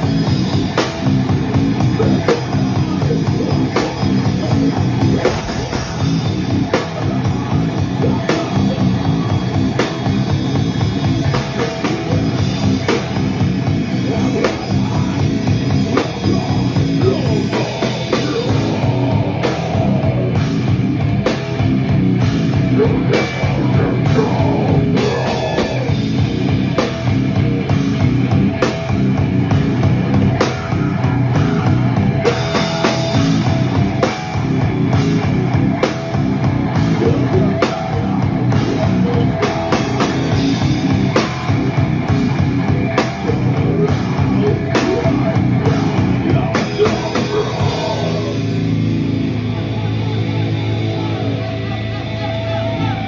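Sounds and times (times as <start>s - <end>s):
distorted electric guitar: 0.0s - 53.0s
drum kit: 0.0s - 53.0s.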